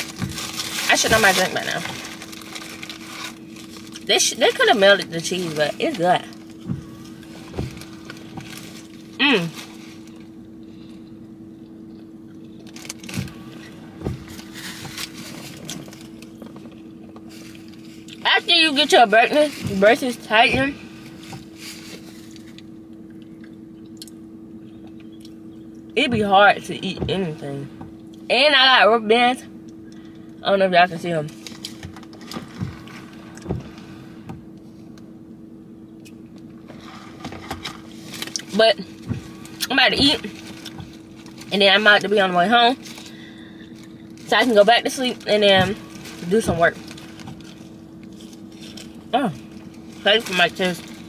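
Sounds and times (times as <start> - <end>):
paper wrapper rustling: 0.0 - 4.7, 7.1 - 10.2, 42.7 - 51.0
low hum inside car: 0.0 - 51.0.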